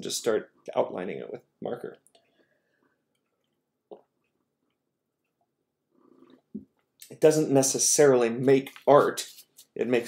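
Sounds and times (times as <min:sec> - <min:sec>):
breath: 0:02.2 - 0:03.0.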